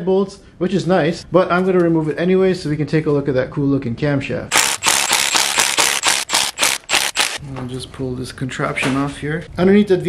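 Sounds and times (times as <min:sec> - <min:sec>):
cordless power tool bursts: 0:04.5 - 0:07.4.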